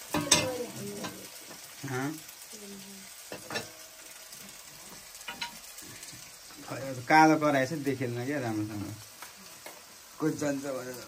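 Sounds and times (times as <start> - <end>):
potatoes sizzling in oil: 0.0 - 11.0.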